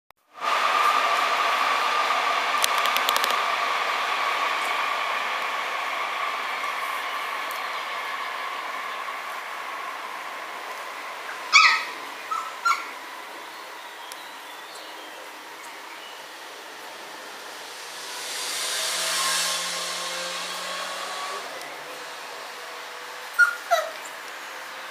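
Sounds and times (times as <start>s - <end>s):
quick clicks: 2.6s - 3.4s
steady high tone: 15.7s - 22.5s
puppies yipping: 23.4s - 24.0s.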